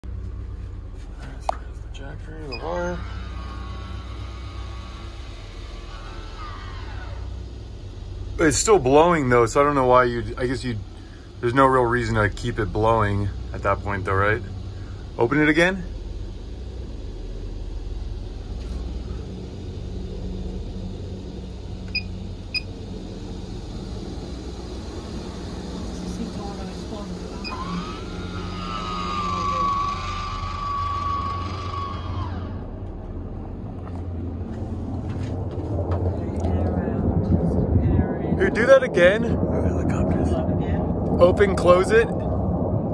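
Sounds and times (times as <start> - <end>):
fan whine: 0.0 - 42.9
vent fan humming: 0.0 - 42.9.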